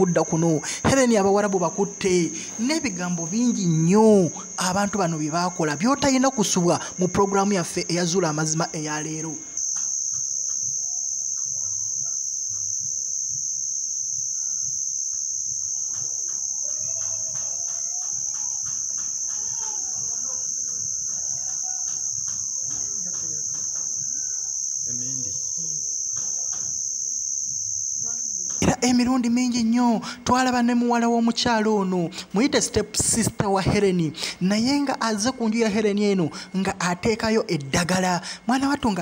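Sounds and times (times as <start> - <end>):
crickets chirping: 0.0 - 39.0.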